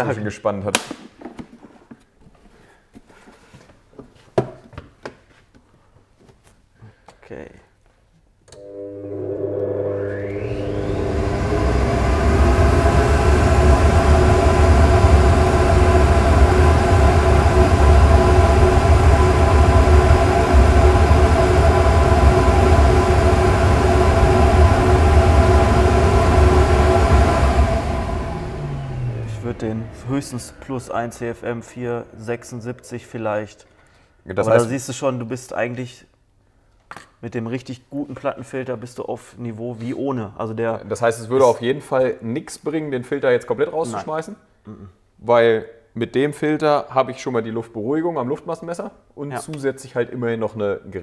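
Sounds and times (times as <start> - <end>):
blower motors whining: 8.5 - 33.6
deep rush of air: 11.1 - 34.3.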